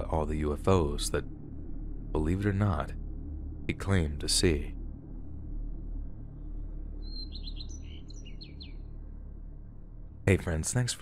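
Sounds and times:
low steady drone: 0:00.0 - 0:11.0
high bird chirps: 0:07.0 - 0:08.9.

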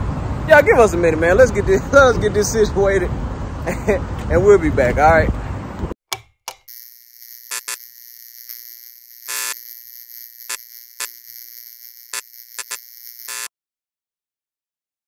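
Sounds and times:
high electric hum: 0:06.5 - 0:13.5
crackling electric zaps: 0:06.6 - 0:13.5.

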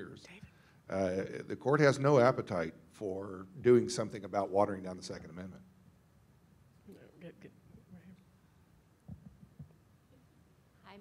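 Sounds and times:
microphone handling thumps: 0:09.0 - 0:09.8.

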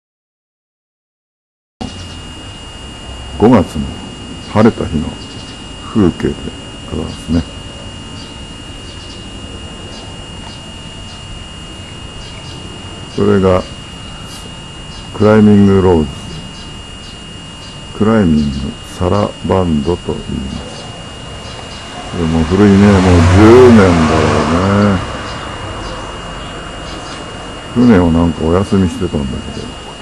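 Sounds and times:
thin high whine: 0:01.8 - 0:30.0.

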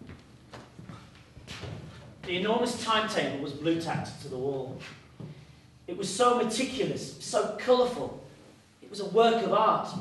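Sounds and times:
footsteps on wooden stage: 0:00.0 - 0:05.5.

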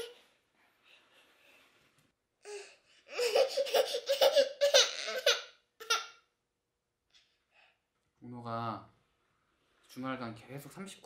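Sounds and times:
baby whimpering: 0:02.4 - 0:06.0
baby crying: 0:02.4 - 0:06.2.

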